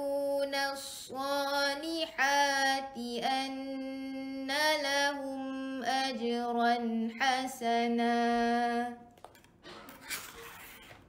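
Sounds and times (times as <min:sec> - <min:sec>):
chanted recitation: 0:00.0 - 0:09.1.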